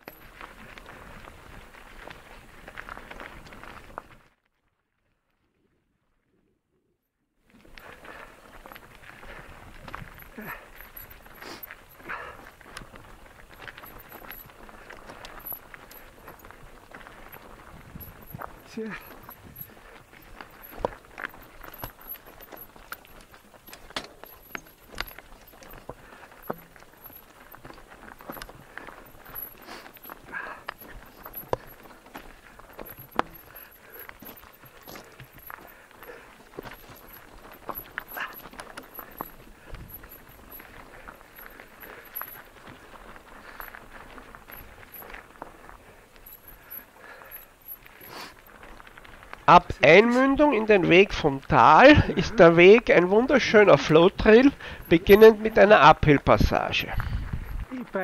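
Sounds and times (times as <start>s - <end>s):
bike knocking and rattling: 0.0s - 4.2s, 7.6s - 58.0s
tyres crunching over gravel: 0.0s - 4.4s, 7.5s - 58.0s.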